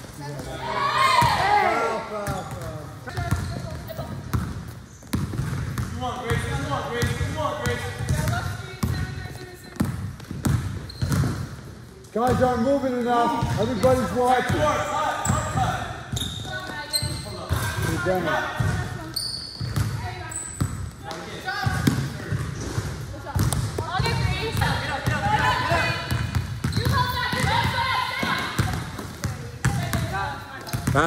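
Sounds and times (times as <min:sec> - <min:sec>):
players' voices: 0:00.0 - 0:04.6, 0:05.4 - 0:10.1, 0:11.7 - 0:19.2, 0:19.8 - 0:31.0
sneakers squeaking: 0:00.0 - 0:31.0
basketball dribbling on gym floor: 0:02.3 - 0:12.6, 0:15.3 - 0:20.9, 0:21.6 - 0:31.0.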